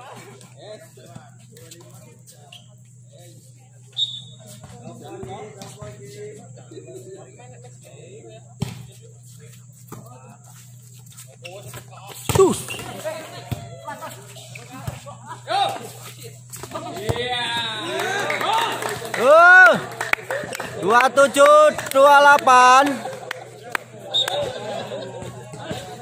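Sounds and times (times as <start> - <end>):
steady low hum: 0.0 - 26.0
spectators chatting and shouting: 17.4 - 26.0.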